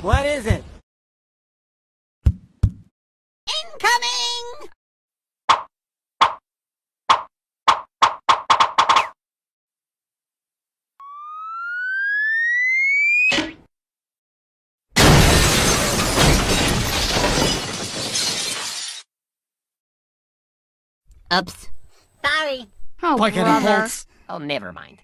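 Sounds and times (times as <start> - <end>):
rising whistle: 11.0 - 13.3
crash of breaking glass: 15.0 - 19.1.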